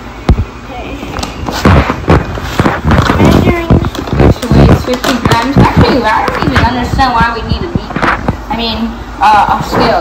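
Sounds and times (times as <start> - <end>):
rapid knocks and thumps: 1.5 - 8.5
voices: 2.9 - 10.0.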